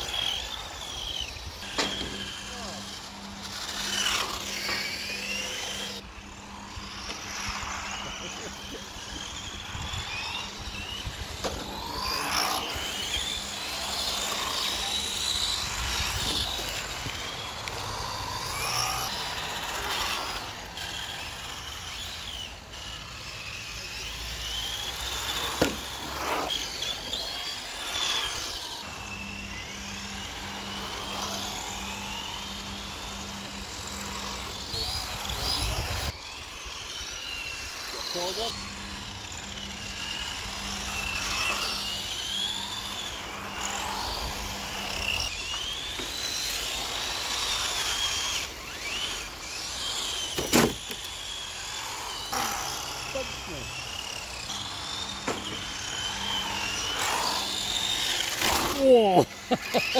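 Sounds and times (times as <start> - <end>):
rc car motors whining: 0.0 - 59.9.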